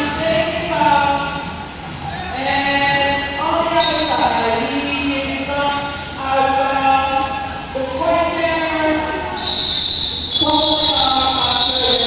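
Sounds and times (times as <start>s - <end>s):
voices shouting in a hall: 0.0s - 12.0s
shrill referee's whistle: 3.8s - 4.3s, 9.4s - 12.0s.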